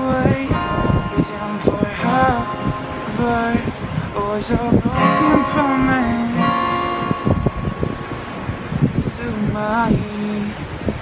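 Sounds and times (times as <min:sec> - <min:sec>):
man singing: 0:00.0 - 0:07.2, 0:08.9 - 0:10.7
acoustic guitar strummed and picked: 0:00.0 - 0:11.0.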